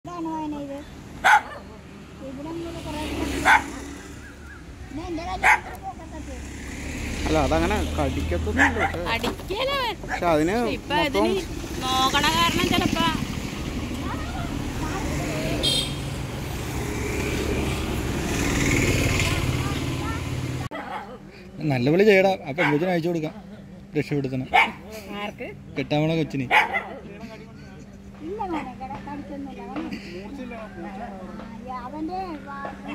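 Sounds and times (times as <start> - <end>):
dog barking: 1.2 - 1.8, 3.4 - 3.8, 5.4 - 5.9, 8.6 - 9.1, 20.7 - 21.2, 22.6 - 22.9, 24.5 - 24.8, 26.5 - 27.1
people talking quietly: 19.2 - 32.9.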